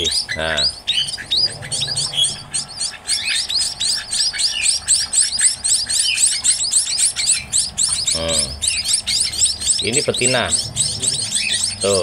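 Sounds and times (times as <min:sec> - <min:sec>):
chicks chirping: 0:00.0 - 0:12.0.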